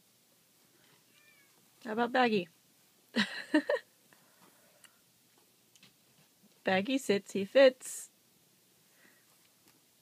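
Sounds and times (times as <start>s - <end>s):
cat meowing faintly: 1.0s - 1.6s.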